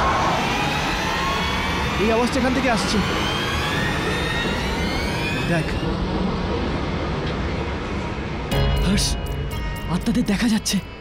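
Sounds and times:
rising whine: 0.0 - 11.0.

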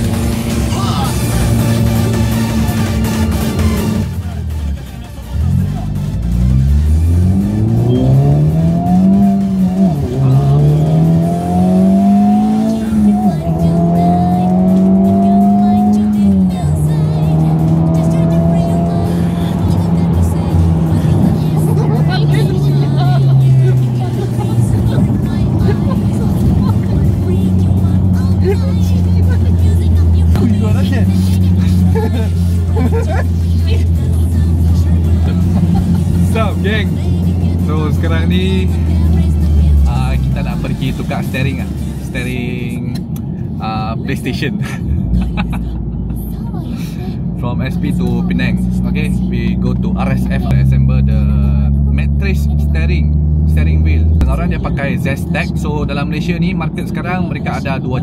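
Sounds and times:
car engine accelerating hard: 0.0 - 58.0.

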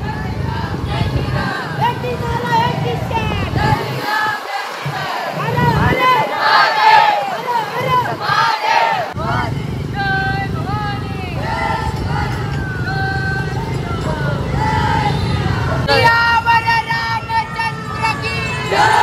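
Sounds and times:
crowd of men chanting: 0.0 - 16.1, 18.7 - 19.0
motorcycle engines rumbling: 0.0 - 19.0.

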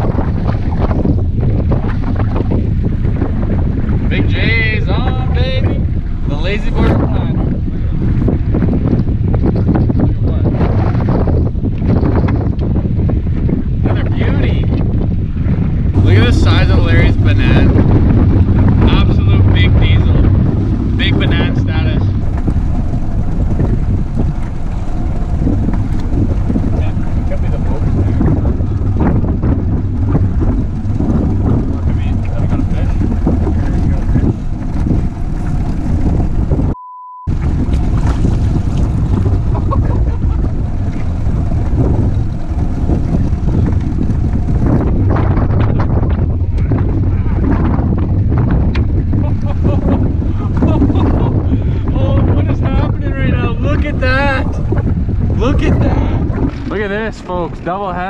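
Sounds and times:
choppy water: 0.0 - 58.0
wind buffeting microphone: 0.0 - 58.0
short steady beep: 36.8 - 37.3.

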